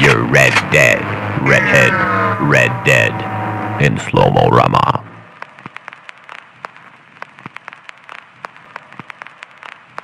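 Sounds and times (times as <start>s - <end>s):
crackle pops and clicks: 5.3s - 10.0s.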